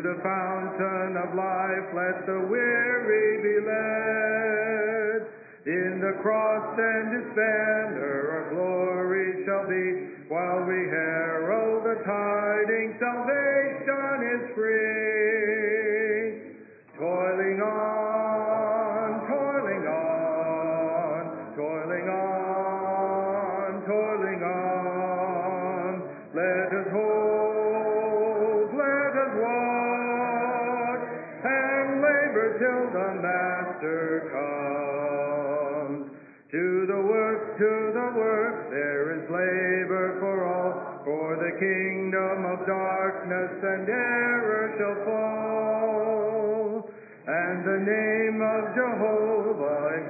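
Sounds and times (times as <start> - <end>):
congregation singing a hymn: 0.0 - 50.0
man's voice leading singing: 0.0 - 50.0.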